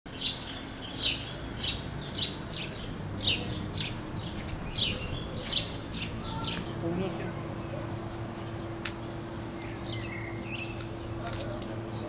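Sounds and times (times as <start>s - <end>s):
small bird chirping: 0.1s - 6.9s, 8.0s - 11.2s
faint street hum: 0.1s - 12.0s.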